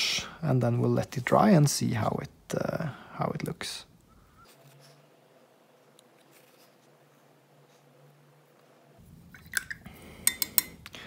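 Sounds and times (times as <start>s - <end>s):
paintbrush clinking on ceramic: 9.4s - 10.8s.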